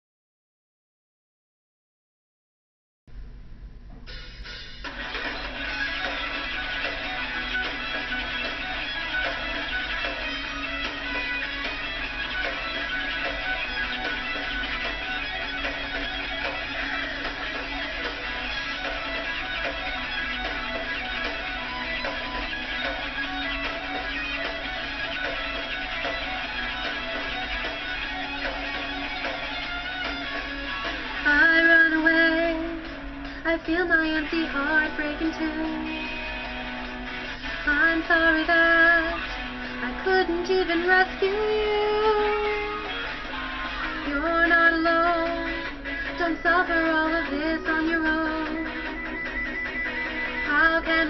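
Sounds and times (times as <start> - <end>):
guitar rock backing track: 4.0 - 51.0
woman singing: 31.2 - 36.2, 37.6 - 42.8, 44.0 - 48.8, 50.4 - 51.0.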